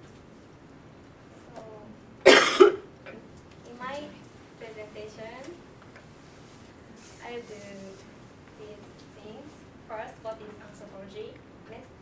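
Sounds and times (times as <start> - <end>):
person coughing: 2.2 - 2.8.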